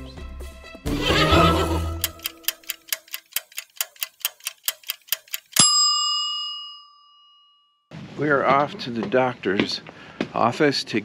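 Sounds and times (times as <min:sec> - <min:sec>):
fast clock ticking: 0:01.9 - 0:05.7
bell ding: 0:05.6 - 0:07.9.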